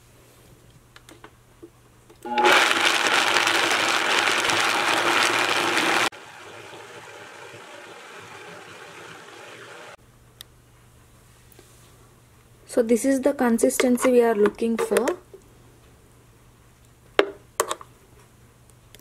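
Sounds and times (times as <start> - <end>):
blender grinding: 2.3 - 10.0.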